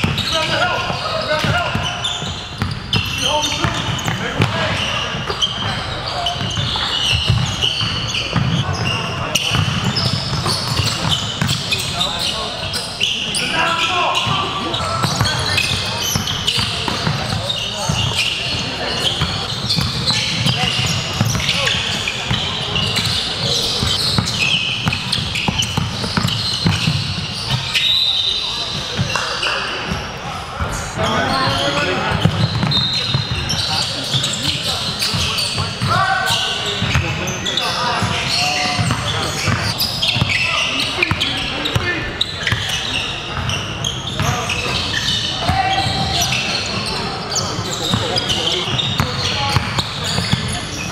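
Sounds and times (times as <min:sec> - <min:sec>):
echoing indistinct voices: 0:00.0 - 0:26.5, 0:28.2 - 0:50.9
sneakers squeaking: 0:00.0 - 0:50.9.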